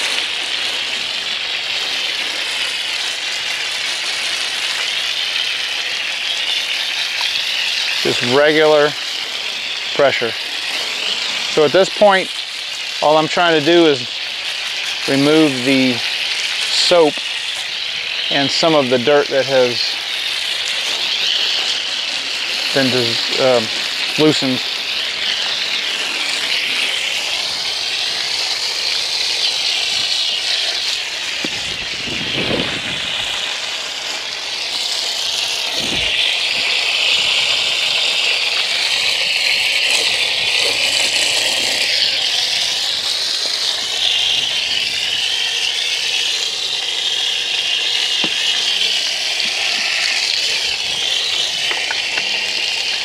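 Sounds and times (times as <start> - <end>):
hose water spraying on bike: 0.0 - 53.0.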